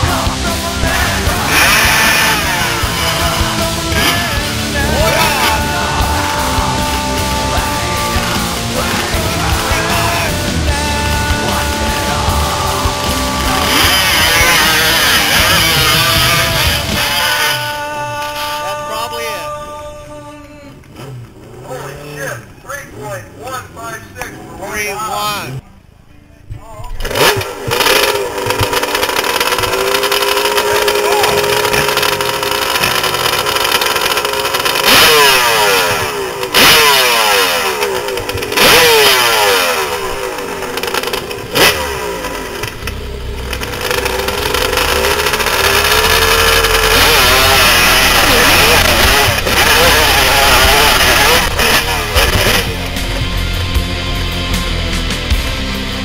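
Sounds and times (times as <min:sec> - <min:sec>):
motorcycle engine revving: 0:00.0 - 0:19.8, 0:20.7 - 0:25.6, 0:27.0 - 0:56.0.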